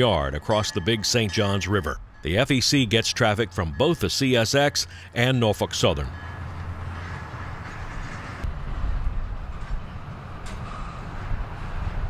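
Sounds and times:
train wheels rumbling on rail: 6.0s - 12.0s.

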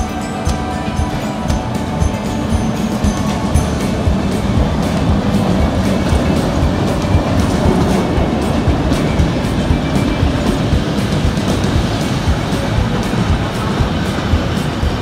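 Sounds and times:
background music: 0.0s - 15.0s
train wheels clattering on rails: 0.0s - 15.0s.

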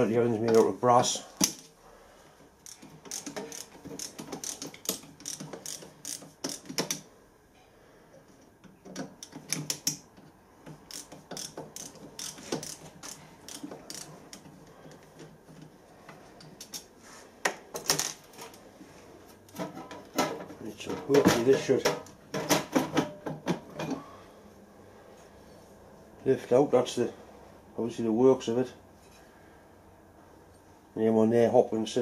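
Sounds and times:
screwdriver clicks and scrapes on metal: 2.6s - 7.1s, 8.6s - 15.7s, 16.4s - 16.9s.

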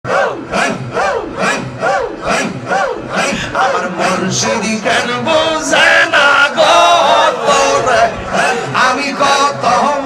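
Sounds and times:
rhythmic chanting over loudspeaker: 0.1s - 10.0s.

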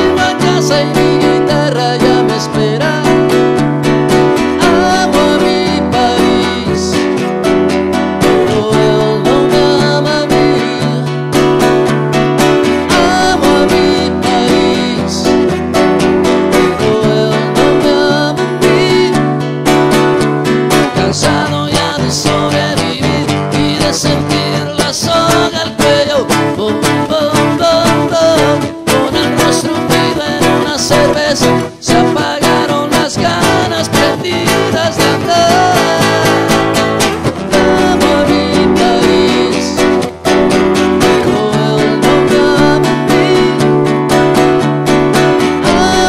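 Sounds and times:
man singing a rock song: 0.0s - 3.5s, 4.4s - 7.3s, 8.2s - 11.3s, 12.8s - 15.7s, 16.5s - 19.4s, 20.8s - 40.2s, 40.8s - 44.2s, 45.6s - 46.0s
nylon-string guitar strumming: 0.0s - 46.0s.

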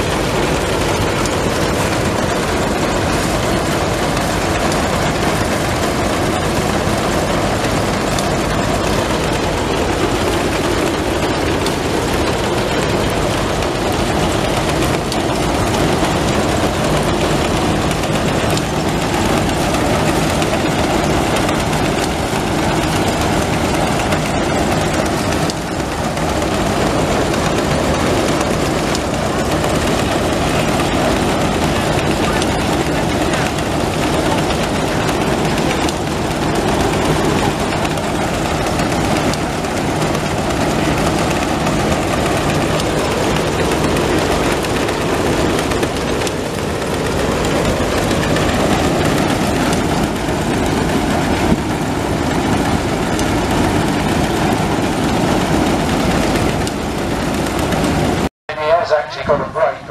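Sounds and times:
threshing machine humming and rattling: 0.0s - 58.3s.

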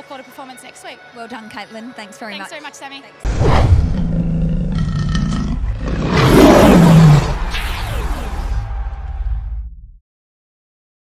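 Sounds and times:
lion roar: 3.3s - 7.5s.

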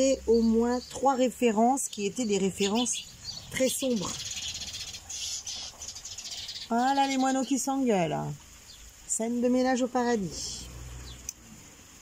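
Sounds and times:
sparrows chirping and chattering: 0.0s - 11.4s.

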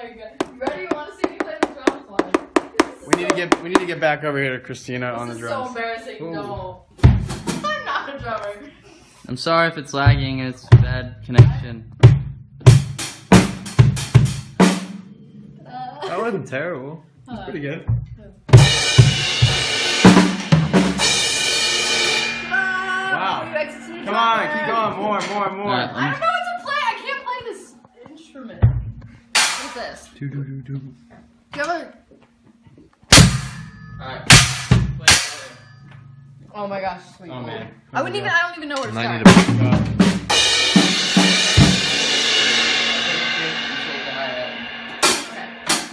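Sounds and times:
drum kit strikes: 0.4s - 4.1s, 6.9s - 8.4s, 9.9s - 15.4s, 17.8s - 23.6s, 28.6s - 30.1s, 33.1s - 36.5s, 39.0s - 45.9s
cymbals ringing: 18.5s - 24.9s, 29.2s - 30.2s, 33.1s - 38.5s, 40.2s - 45.9s.

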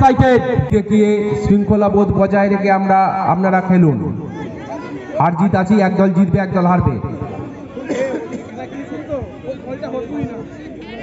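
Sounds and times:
spectators chattering and calling out: 3.2s - 11.0s.

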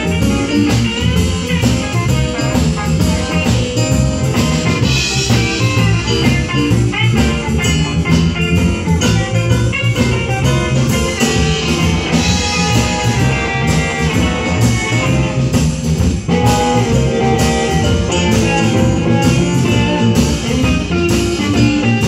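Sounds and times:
bass: 0.0s - 22.0s
drum kit: 0.0s - 22.0s
electric guitar: 0.0s - 22.0s
keyboard: 0.0s - 22.0s.

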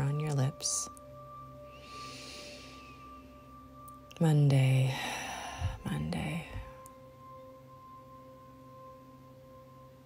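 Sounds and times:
soft ambient music: 0.0s - 10.0s
faint breathy hiss: 1.6s - 3.4s, 4.7s - 6.9s.

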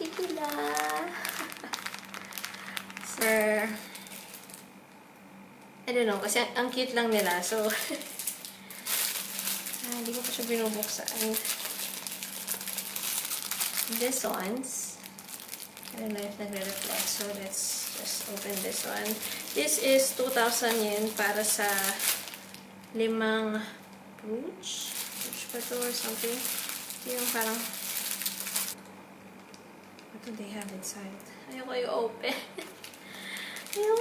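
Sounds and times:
plastic bag crinkling: 0.0s - 4.8s, 6.2s - 23.0s, 24.7s - 30.9s, 32.6s - 34.0s
faint steady hum: 0.0s - 34.0s.

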